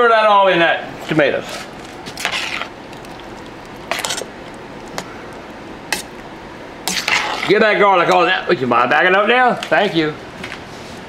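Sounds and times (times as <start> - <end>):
metal spoon stirring in a pot: 1.5 - 6.2.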